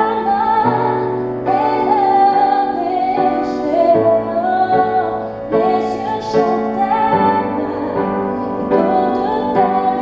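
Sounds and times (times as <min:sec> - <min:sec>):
piano chords: 0:00.0 - 0:10.0
woman singing: 0:00.0 - 0:10.0.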